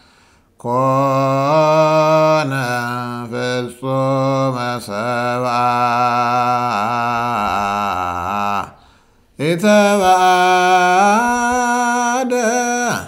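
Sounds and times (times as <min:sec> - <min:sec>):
man chanting a hymn solo: 0:00.6 - 0:08.8, 0:09.4 - 0:13.0.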